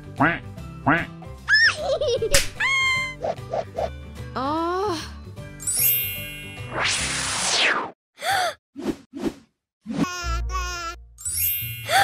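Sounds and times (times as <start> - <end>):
background music: 0.0 - 7.2
twinkling chime: 5.6 - 6.7, 11.2 - 12.0.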